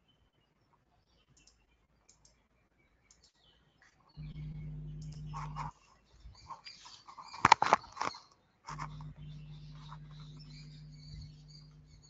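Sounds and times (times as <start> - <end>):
faint high-pitched clicks and chirps: 0.0 - 12.0.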